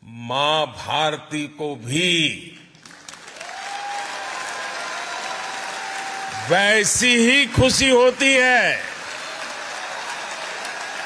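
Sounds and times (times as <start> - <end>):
audience applauding: 2.7 - 11.0.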